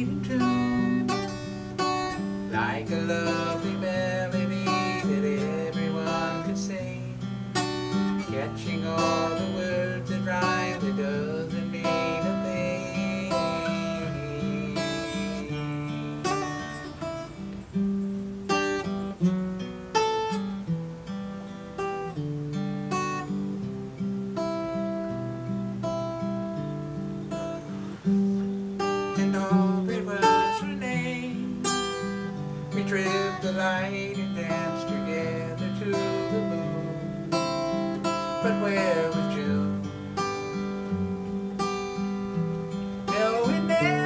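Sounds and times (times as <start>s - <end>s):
acoustic guitar strumming: 0.0s - 44.0s.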